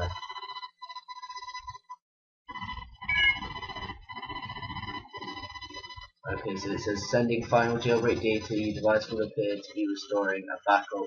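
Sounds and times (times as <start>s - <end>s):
electronic buzzing tone: 3.0s - 3.8s
short chirp: 3.1s - 3.5s.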